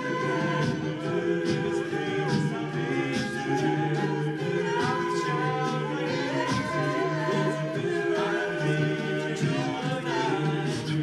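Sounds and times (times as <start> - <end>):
male group singing in harmony: 0.0 - 11.0
vocal percussion beat: 0.0 - 11.0.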